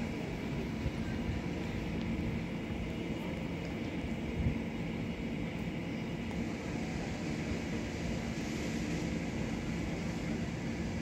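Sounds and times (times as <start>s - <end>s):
electric trains rumbling: 0.0s - 11.0s.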